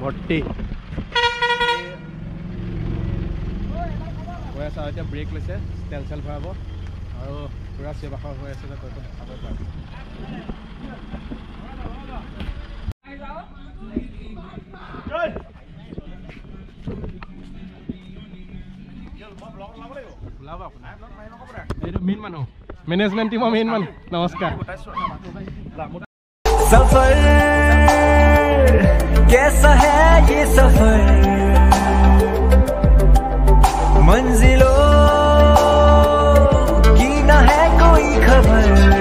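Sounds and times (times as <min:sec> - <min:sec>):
bus engine idling: 0:00.0 - 0:12.9.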